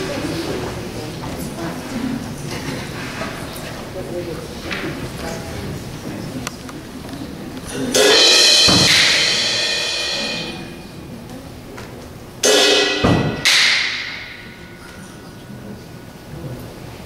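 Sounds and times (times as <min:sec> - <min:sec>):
drums: 0:07.9 - 0:11.0, 0:12.4 - 0:14.5
concert band playing: 0:07.9 - 0:11.2, 0:12.4 - 0:14.6.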